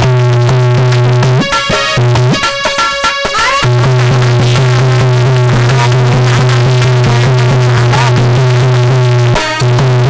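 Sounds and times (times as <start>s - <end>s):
electronic keyboard accompaniment: 0.6s - 10.0s.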